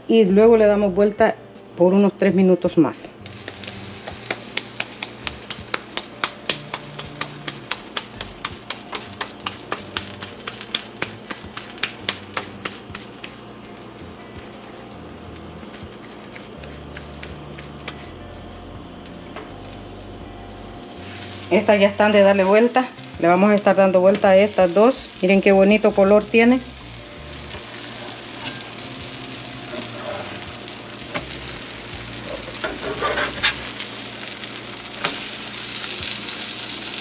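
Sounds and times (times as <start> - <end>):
background music bass line: 3.1 - 33.8
hands slapping dough: 3.4 - 13.4.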